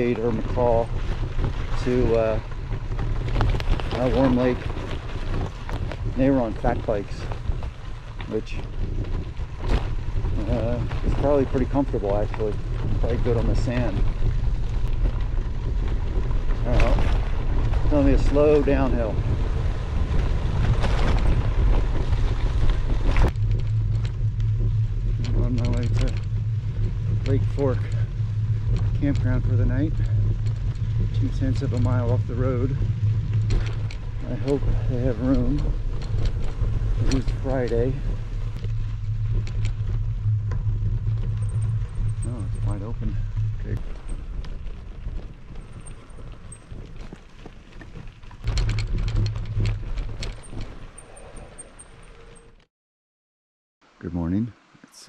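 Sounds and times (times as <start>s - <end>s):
tyres rolling on gravel: 0.0s - 52.5s
wind rushing over microphone: 0.0s - 52.6s
bike rattles and clicks: 0.0s - 52.7s
dull low rumble: 0.0s - 52.7s.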